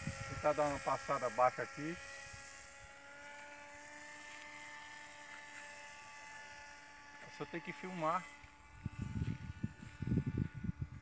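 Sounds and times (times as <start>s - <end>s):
model motor and propeller whine: 0.0s - 11.0s.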